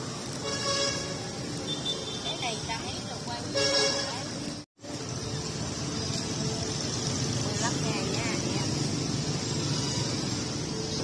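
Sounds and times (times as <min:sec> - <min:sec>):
constant hiss: 0:00.0 - 0:11.0
low traffic rumble: 0:00.0 - 0:11.0.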